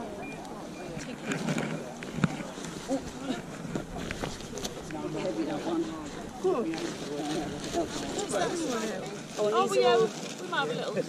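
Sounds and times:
chatter of people: 0:00.0 - 0:11.0
rustling and handling noises: 0:00.0 - 0:11.0.

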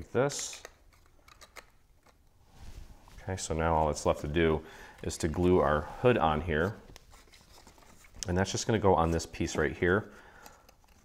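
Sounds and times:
handling cardstock paper: 0:03.1 - 0:11.0.

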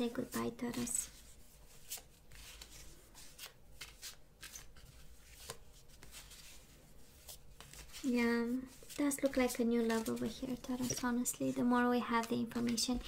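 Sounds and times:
cards being shuffled: 0:00.0 - 0:11.4, 0:12.1 - 0:13.0.

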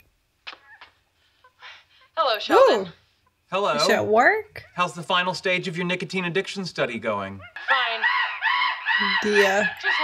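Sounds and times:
monkey squealing: 0:07.4 - 0:10.0.

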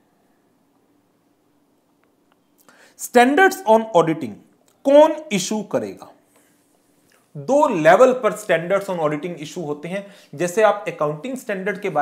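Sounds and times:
low steady hum: 0:00.0 - 0:12.0
soft breath: 0:02.6 - 0:03.0, 0:10.0 - 0:10.4.

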